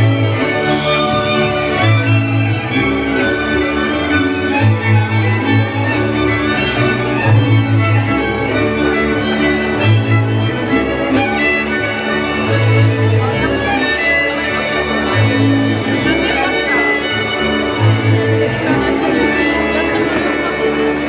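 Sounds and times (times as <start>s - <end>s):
bowed bass line: 0.0s - 21.0s
fiddles playing melody: 0.0s - 21.0s.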